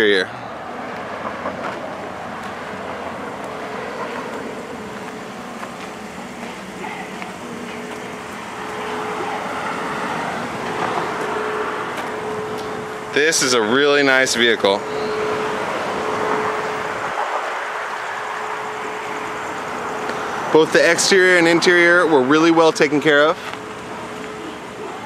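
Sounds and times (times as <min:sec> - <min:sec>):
traffic-like hum: 0:00.0 - 0:25.0
faint steady tone: 0:02.4 - 0:21.4.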